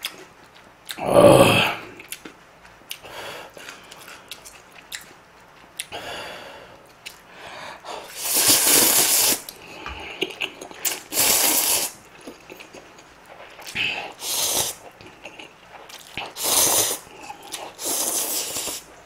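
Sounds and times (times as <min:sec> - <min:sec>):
chewing: 0:02.0 - 0:06.0, 0:12.0 - 0:16.4, 0:17.0 - 0:19.0
person slurping noodles: 0:08.0 - 0:09.4, 0:10.2 - 0:12.0, 0:13.6 - 0:14.8, 0:16.2 - 0:18.9.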